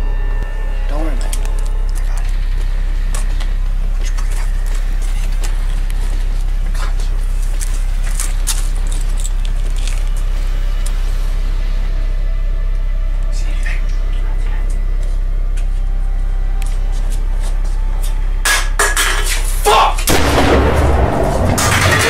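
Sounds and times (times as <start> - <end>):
loud low drone: 0.0 - 22.0
rustling: 1.4 - 11.2.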